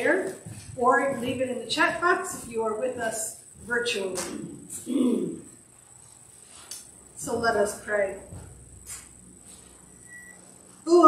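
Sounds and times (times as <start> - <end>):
woman speaking: 0.0 - 4.8, 7.2 - 8.4.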